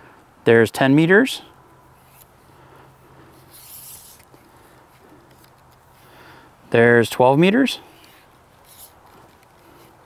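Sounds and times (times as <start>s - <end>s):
metal antenna sliding out: 3.4s - 4.5s.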